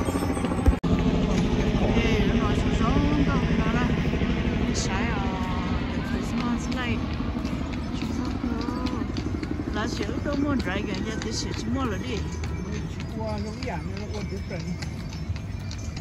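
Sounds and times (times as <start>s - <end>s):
vehicle engines rumbling: 0.0s - 16.0s
people's voices: 1.8s - 15.4s.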